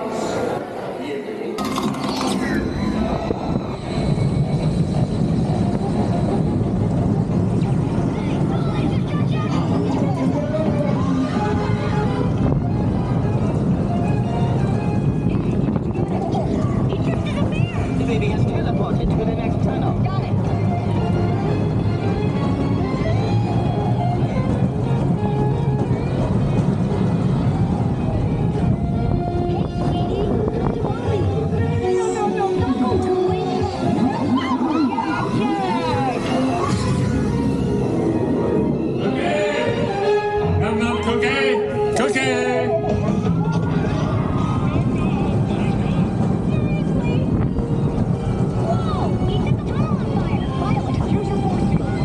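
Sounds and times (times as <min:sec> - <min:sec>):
ride music: 0:01.6 - 0:52.0
roller coaster rumbling on track: 0:01.6 - 0:52.0.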